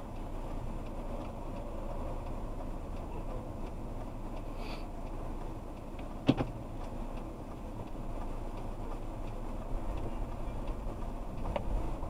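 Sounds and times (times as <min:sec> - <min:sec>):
car engine running: 0:00.0 - 0:12.0
turn signal ticking: 0:00.0 - 0:12.0.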